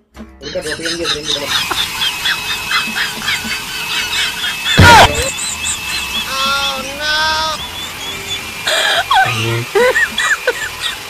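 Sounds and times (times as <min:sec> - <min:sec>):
quick squeaky chirps: 0:03.9 - 0:09.4
buzzy horn honks: 0:04.4 - 0:07.7
loud hit with falling tone: 0:04.8 - 0:05.5.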